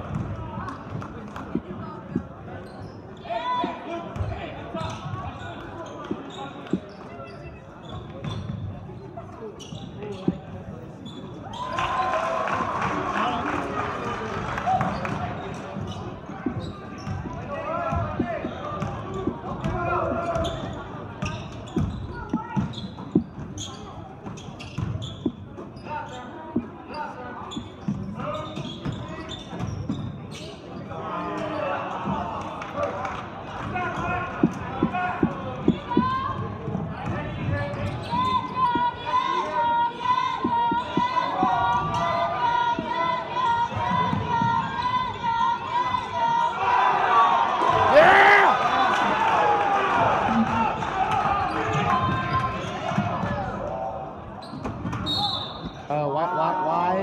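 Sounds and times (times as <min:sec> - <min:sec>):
murmur of crowd and player voices: 0:00.0 - 0:57.0.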